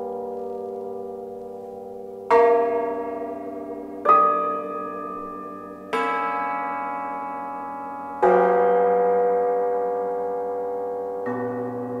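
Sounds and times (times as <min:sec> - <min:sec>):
cimbalom chords ringing: 0:00.0 - 0:12.0.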